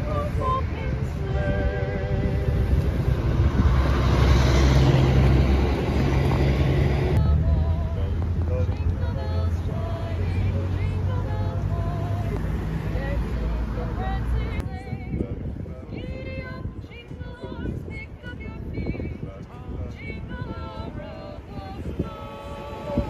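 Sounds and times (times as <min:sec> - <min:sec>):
group singing carols: 0:00.0 - 0:05.5, 0:06.9 - 0:23.0
motor vehicle rumbling: 0:00.0 - 0:23.0.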